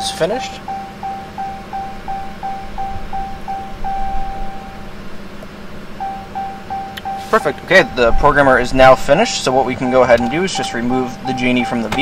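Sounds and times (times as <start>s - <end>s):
low steady hum: 0.0s - 12.0s
electronic chime beeping: 0.6s - 4.8s, 6.0s - 11.9s.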